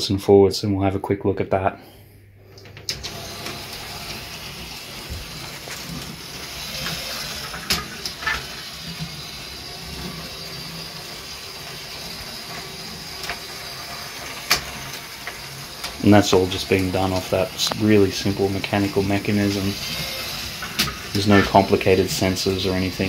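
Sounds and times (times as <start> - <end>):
toy train motor whirring: 2.9 - 23.0.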